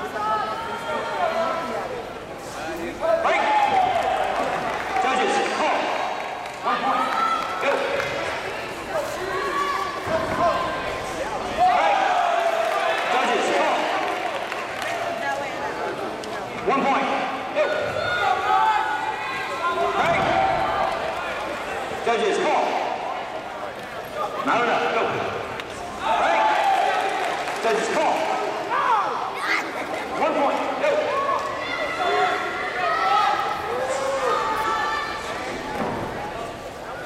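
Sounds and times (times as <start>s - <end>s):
voices shouting and calling out: 0.0s - 37.0s.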